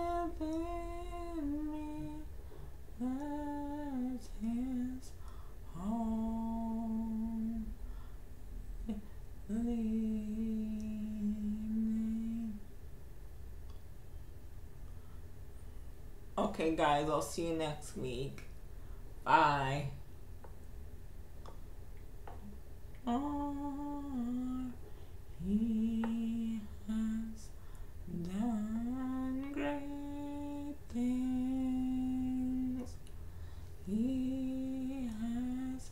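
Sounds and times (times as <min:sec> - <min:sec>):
woman singing wordless tune: 0:00.0 - 0:07.8, 0:08.8 - 0:12.7, 0:23.0 - 0:33.0, 0:33.8 - 0:35.9
woman humming slow tune: 0:08.8 - 0:12.6, 0:23.1 - 0:24.8, 0:28.1 - 0:33.0.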